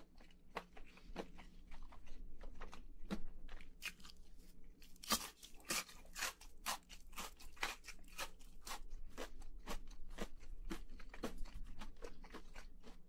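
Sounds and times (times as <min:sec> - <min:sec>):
crisp chewing crunches: 0:00.0 - 0:13.0.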